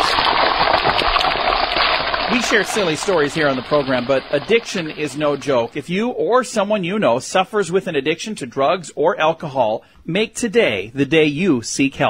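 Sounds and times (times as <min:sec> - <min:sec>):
egg sizzling in a hot pan: 0:00.0 - 0:05.4
person speaking: 0:02.3 - 0:12.0.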